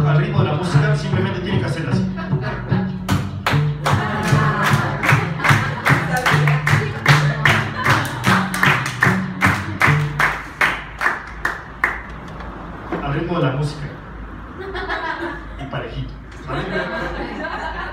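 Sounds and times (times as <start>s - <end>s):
acoustic guitar rhythm: 0.0s - 12.3s
audience clapping in time: 3.1s - 12.3s.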